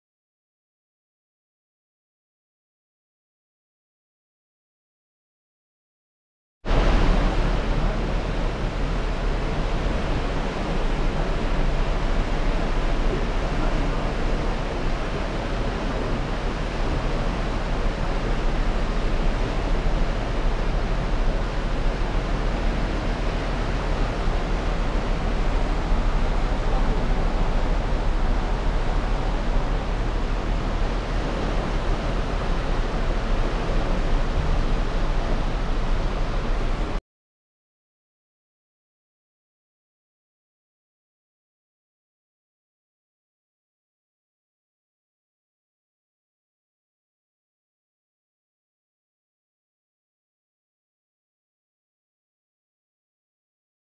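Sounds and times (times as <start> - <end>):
deep rumble: 6.7 - 37.0
water rushing from ship thrusters: 6.7 - 37.0.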